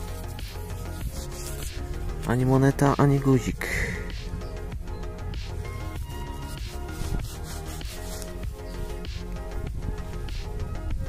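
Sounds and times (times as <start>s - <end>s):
fingers rubbing soil off metal: 0.0s - 2.1s, 5.7s - 9.4s
background music: 0.0s - 11.0s.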